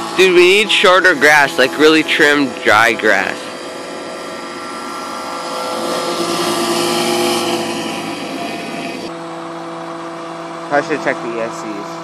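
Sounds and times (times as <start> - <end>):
electric motors and propellers whining: 0.0 - 12.0.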